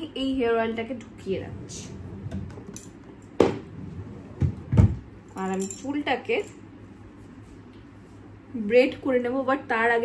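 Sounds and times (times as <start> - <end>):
bangles clinking: 5.3 - 6.6.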